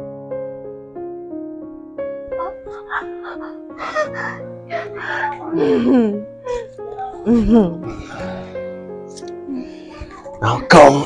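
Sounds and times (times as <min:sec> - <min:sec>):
soft keyboard music: 0:00.0 - 0:11.0
woman gasping and moaning: 0:02.4 - 0:08.6.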